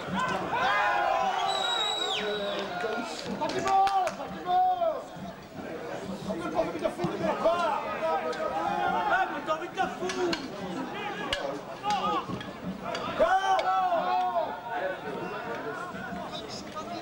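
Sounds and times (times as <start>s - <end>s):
voices shouting and calling: 0.0s - 17.0s.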